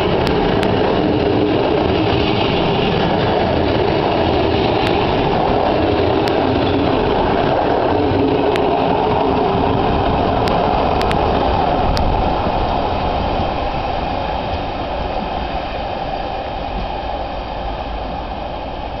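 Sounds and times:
train wheels rumbling on rails: 0.0s - 19.0s.

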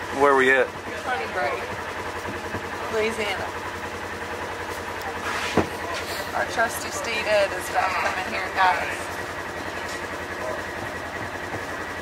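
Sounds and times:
engine idling: 0.0s - 12.0s.

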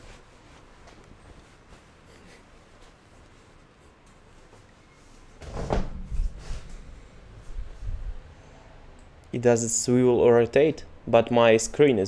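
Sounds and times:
muffled thump with deep rumble: 5.4s - 8.5s.

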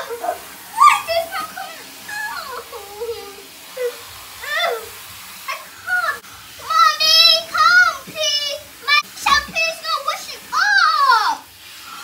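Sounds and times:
girl crying and wailing: 0.0s - 1.5s.

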